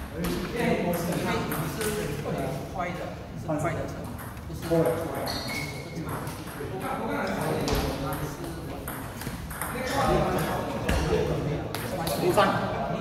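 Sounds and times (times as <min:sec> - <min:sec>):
people talking: 0:00.1 - 0:13.0
ball bouncing on table: 0:07.4 - 0:10.2.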